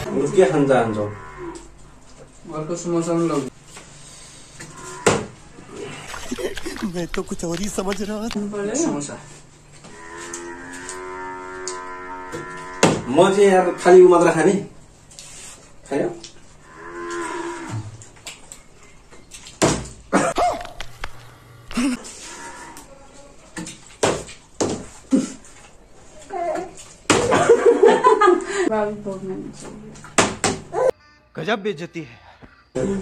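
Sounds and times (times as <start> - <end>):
cow mooing: 0.0 - 1.8, 4.6 - 5.8, 9.9 - 14.3, 16.6 - 18.0, 22.2 - 22.9.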